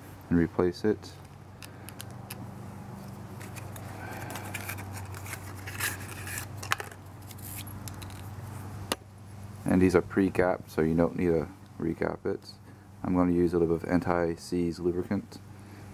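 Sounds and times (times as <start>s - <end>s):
steady low hum: 0.0s - 15.9s
cardboard box rustling: 3.0s - 7.5s.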